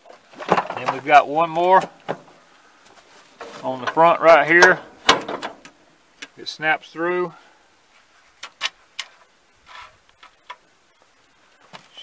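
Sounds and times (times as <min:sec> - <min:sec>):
metal scrape: 0:09.6 - 0:10.0.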